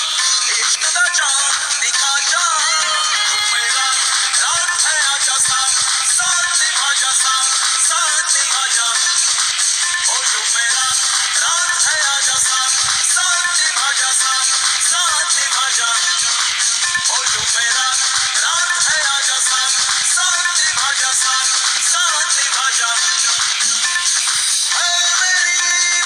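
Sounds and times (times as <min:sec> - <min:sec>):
song with wavering melody: 0:00.0 - 0:26.0.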